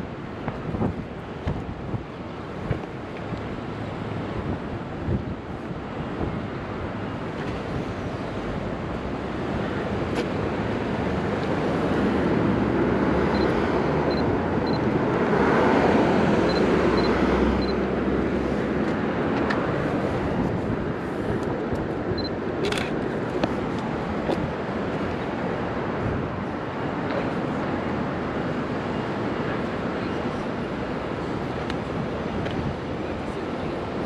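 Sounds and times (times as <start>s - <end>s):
street traffic: 0.0s - 34.0s.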